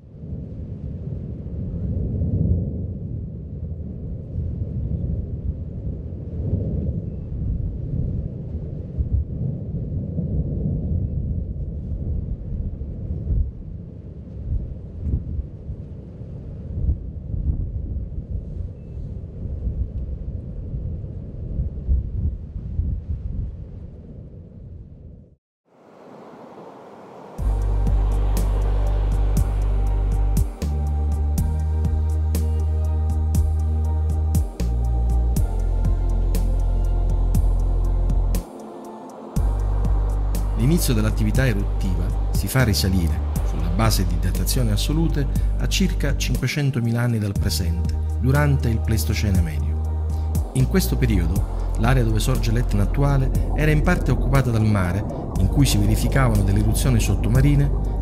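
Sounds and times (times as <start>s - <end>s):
deep uneven rumble: 25.8s - 38.5s, 39.4s - 46.4s, 47.4s - 58.0s
music with sustained low notes: 26.2s - 58.0s.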